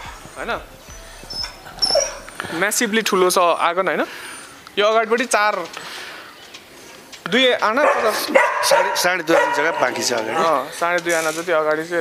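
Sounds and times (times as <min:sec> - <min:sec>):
dog whimpering: 0:00.9 - 0:02.4.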